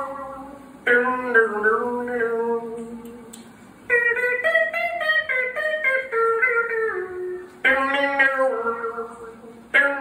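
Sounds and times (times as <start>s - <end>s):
solo guitar melody: 0.0s - 10.0s.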